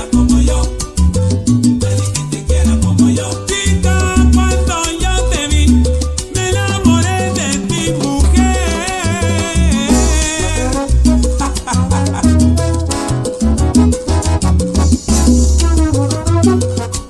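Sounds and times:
salsa music over sound system: 0.0 - 17.0.

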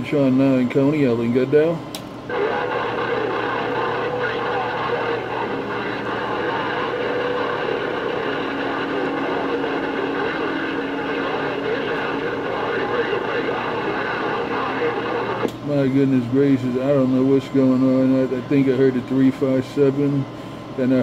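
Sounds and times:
whining heterodyne tones: 2.3 - 15.5
garbled overlapping radio voices: 2.3 - 21.0
radio static hiss: 2.3 - 21.0.

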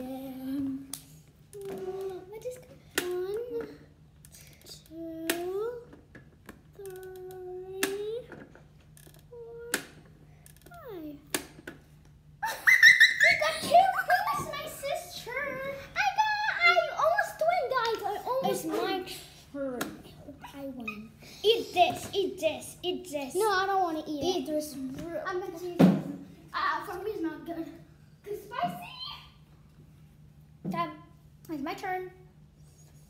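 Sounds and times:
children shrieking and laughing: 12.4 - 17.4.

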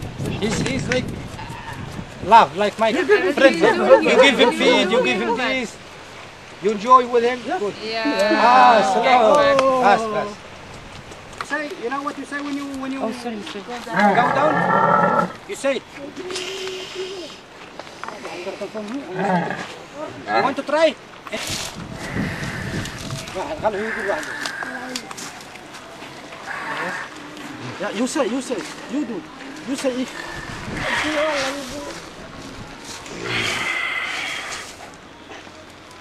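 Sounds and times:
people's voices: 0.0 - 10.6, 11.2 - 36.0
camel groaning: 1.4 - 2.0, 13.9 - 15.5, 19.0 - 19.8, 21.9 - 25.1, 26.4 - 27.8, 29.5 - 31.9, 33.0 - 34.8.

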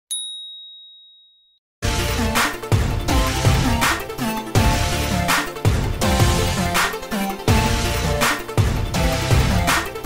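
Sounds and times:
high clear ding: 0.1 - 1.4
music: 1.8 - 10.0.

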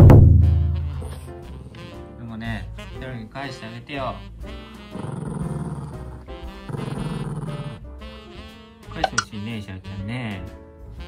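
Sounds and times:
dog growling low: 4.9 - 7.8.

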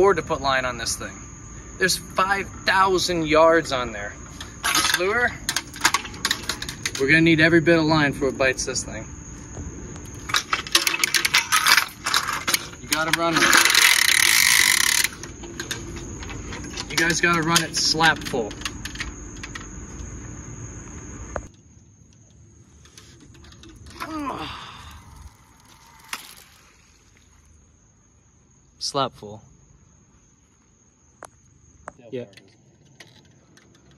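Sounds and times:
fishing line paying out: 10.1 - 16.1, 22.6 - 27.7.

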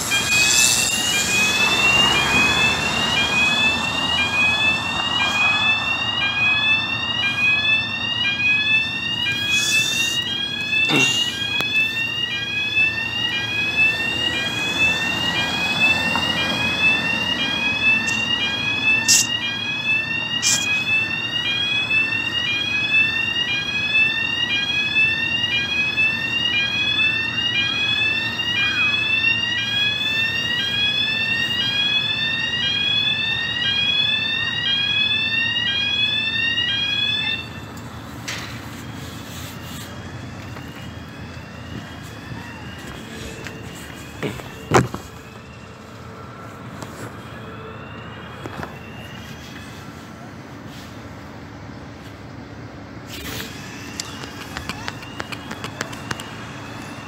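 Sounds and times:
electronic yelp alarm: 0.0 - 50.0, 53.1 - 57.0.

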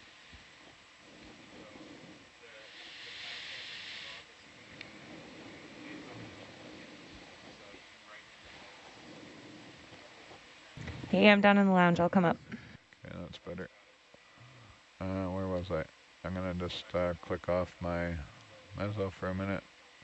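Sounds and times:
burst of hiss: 0.0 - 11.1
faint distant voices: 0.0 - 20.0.

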